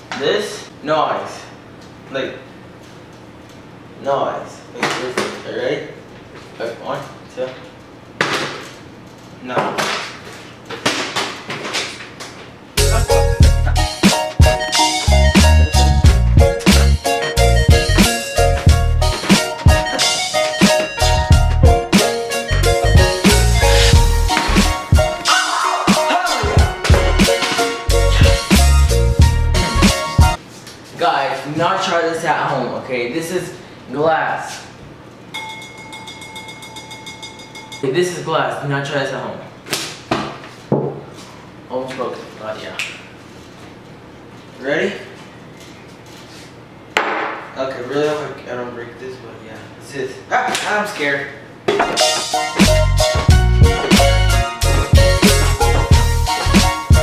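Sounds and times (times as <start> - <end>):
steady high tone: 12.8 - 30.4, 35.3 - 38.0, 52.0 - 57.0.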